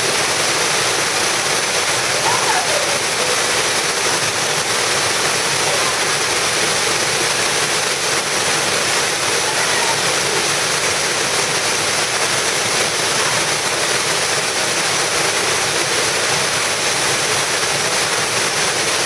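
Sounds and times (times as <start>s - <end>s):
waterfall rushing: 0.0s - 19.0s.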